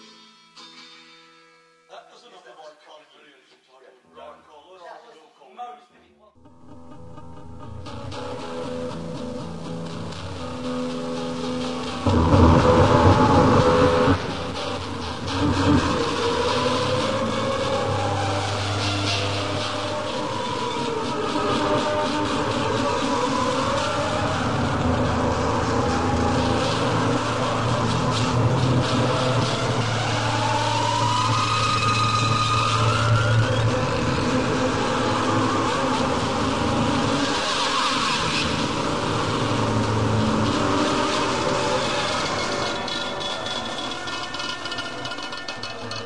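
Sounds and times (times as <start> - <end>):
experimental music with low drone: 6.4 - 46.0.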